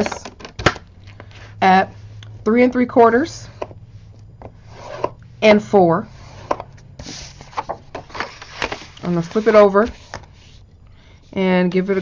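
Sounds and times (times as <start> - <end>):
scoring tool scraping card: 4.5 - 5.2, 6.1 - 10.6.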